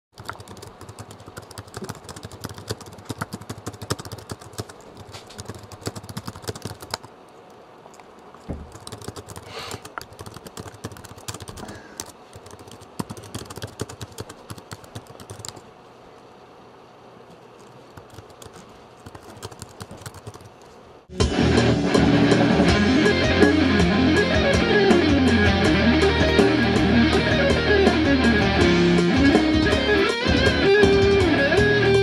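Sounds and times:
computer keyboard typing: 0.2s - 7.1s, 8.6s - 15.6s, 17.6s - 20.7s.

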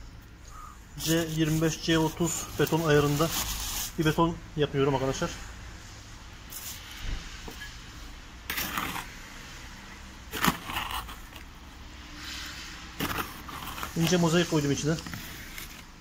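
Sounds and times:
metal rod and trowel scraping mortar: 8.5s - 9.2s, 10.3s - 11.4s, 12.2s - 14.5s.

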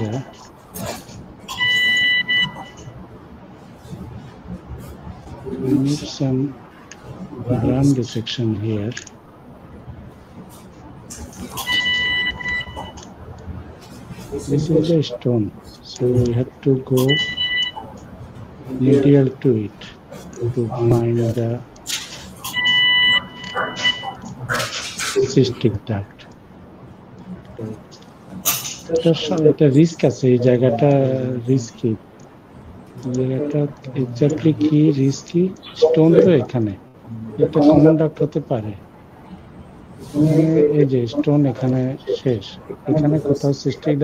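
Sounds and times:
high electronic beep: 1.5s - 2.9s, 11.6s - 13.0s, 17.0s - 17.8s, 22.5s - 24.3s.

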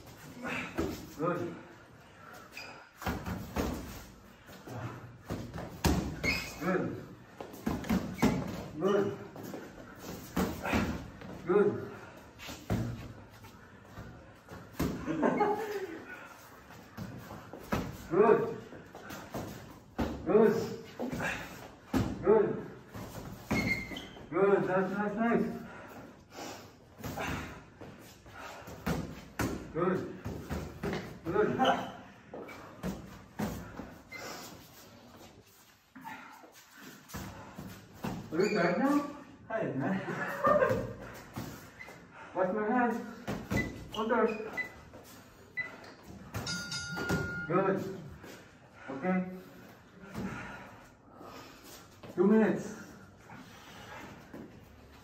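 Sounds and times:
man talking: 47.5s - 48.0s, 52.2s - 52.9s.

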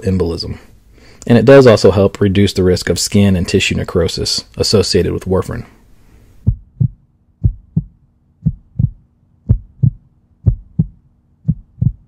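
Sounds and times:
faint steady hum: 0.0s - 12.0s
heartbeat thumps: 6.4s - 12.0s.

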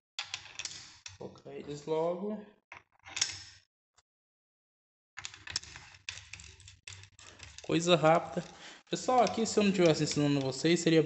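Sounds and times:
metal nuts and washers clicking: 5.2s - 10.7s.

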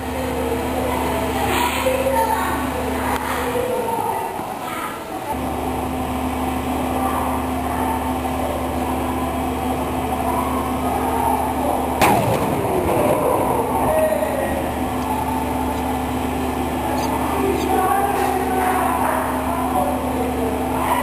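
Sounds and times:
steady low hum: 0.0s - 21.0s
explosion blast: 12.0s - 15.7s.

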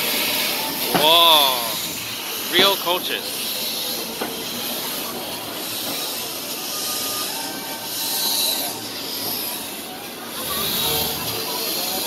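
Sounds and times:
steam hissing: 0.0s - 12.0s
steam train rolling past: 0.0s - 12.0s.

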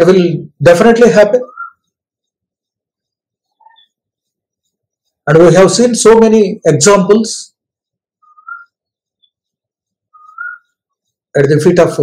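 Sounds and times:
whistle-like chirp: 1.4s - 1.9s, 8.2s - 8.8s, 10.1s - 10.8s.

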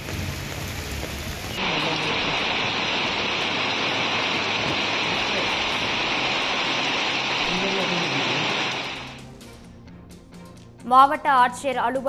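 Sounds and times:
heavy rain pouring: 0.0s - 9.3s.

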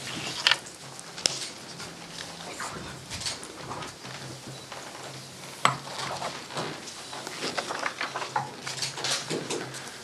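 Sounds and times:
paper rustling: 5.9s - 9.4s.

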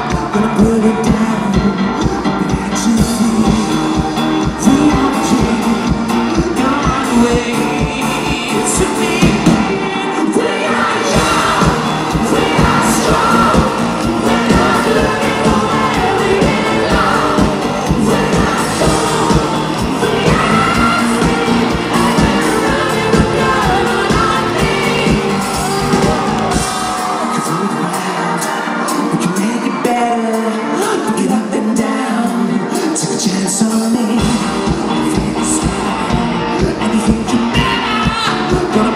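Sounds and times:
bass guitar: 0.0s - 27.5s, 34.0s - 38.9s
backing singer: 0.0s - 38.9s
drums: 0.0s - 38.9s
guitar: 0.0s - 38.9s
male singer: 0.0s - 38.9s.

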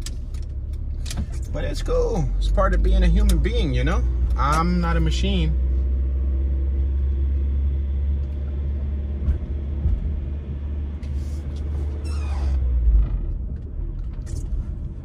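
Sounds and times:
car road and engine rumble: 0.0s - 15.0s.

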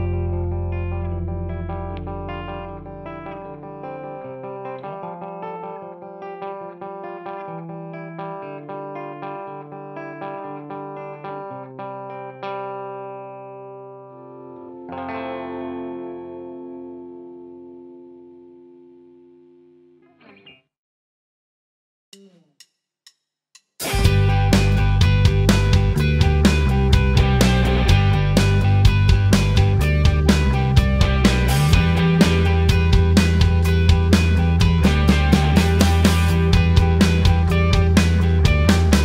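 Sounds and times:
electric guitar chords ringing: 0.0s - 20.6s, 23.8s - 39.0s
electric guitar picking notes: 0.0s - 20.6s, 23.8s - 39.0s.

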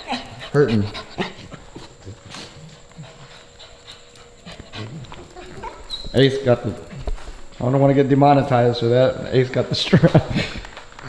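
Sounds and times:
dog panting: 0.0s - 7.7s.

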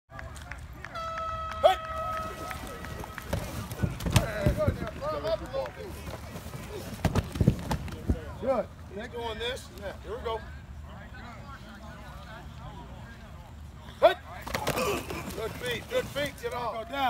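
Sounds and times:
voices calling out: 0.4s - 8.9s, 9.6s - 17.0s
padded players hitting: 1.6s - 8.2s, 14.4s - 16.6s.

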